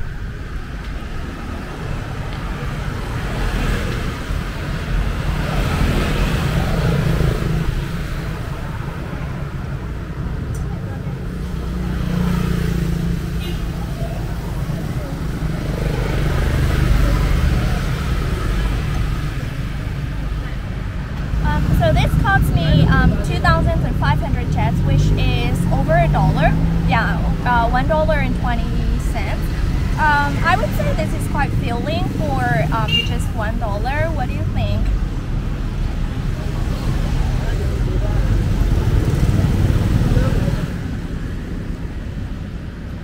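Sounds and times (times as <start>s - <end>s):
voices talking: 0.0s - 41.4s
cars and motorbikes passing: 0.0s - 43.0s
low rumble of traffic: 0.0s - 43.0s.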